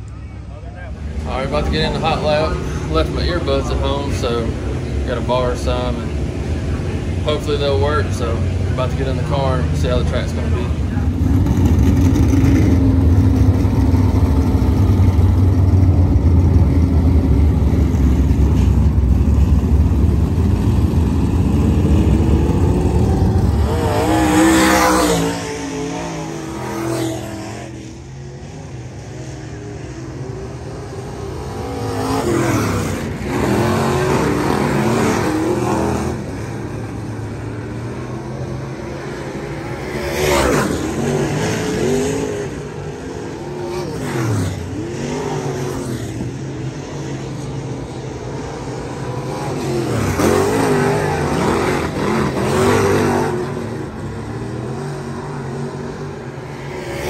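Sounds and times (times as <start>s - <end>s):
race car engines running: 0.0s - 57.0s
race cars passing: 0.0s - 57.0s.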